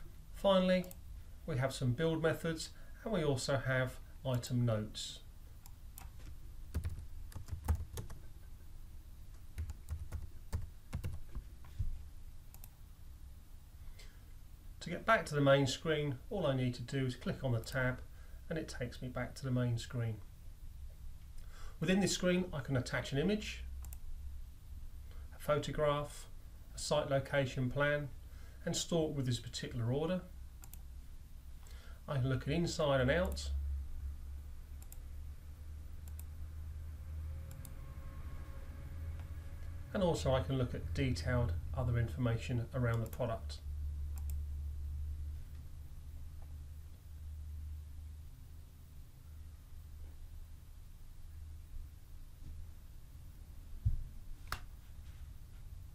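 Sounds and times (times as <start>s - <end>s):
low steady hum: 0.0s - 55.9s
computer keyboard typing: 6.0s - 8.2s, 9.3s - 11.4s
computer mouse clicking: 34.8s - 35.0s, 36.0s - 36.3s, 37.5s - 37.8s.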